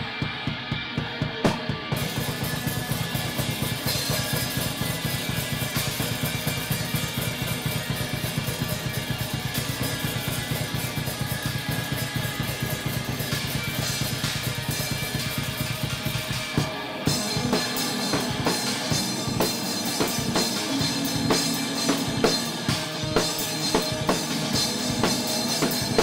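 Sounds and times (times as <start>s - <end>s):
rock drum kit playing fast: 0.0s - 26.0s.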